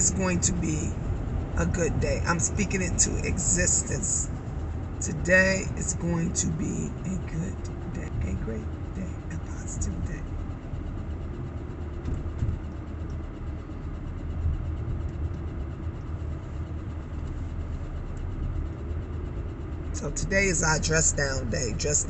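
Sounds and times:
car engine rumble inside cabin: 0.0 - 22.0.

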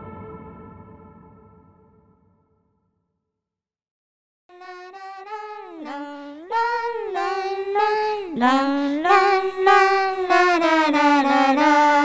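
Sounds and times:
high voice singing la notes: 4.5 - 12.0.

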